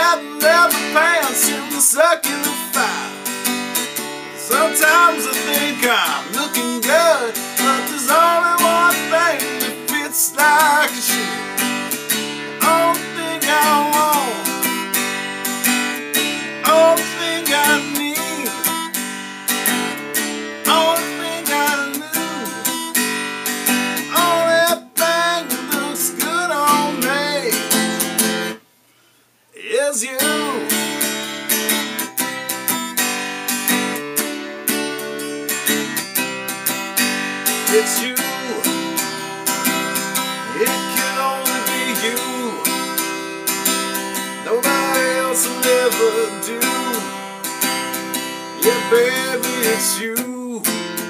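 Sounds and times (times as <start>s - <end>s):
man singing: 0.0s - 15.0s, 16.2s - 23.1s, 23.7s - 28.4s, 29.5s - 31.6s, 37.4s - 51.0s
acoustic guitar strumming: 0.0s - 28.7s, 29.6s - 51.0s.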